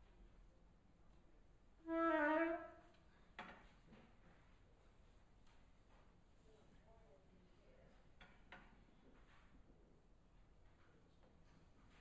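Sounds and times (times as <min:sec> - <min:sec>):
flute note: 0:01.8 - 0:02.8.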